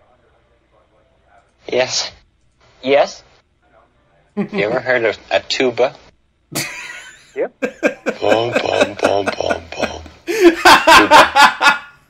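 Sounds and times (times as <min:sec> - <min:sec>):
man laughing heartily: 0:06.5 - 0:12.0
chuckling laughter: 0:06.6 - 0:12.0.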